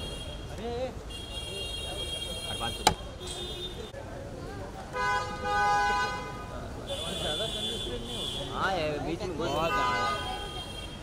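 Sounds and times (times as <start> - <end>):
car horn honking: 0.0 - 3.9, 4.9 - 8.6, 9.4 - 11.0.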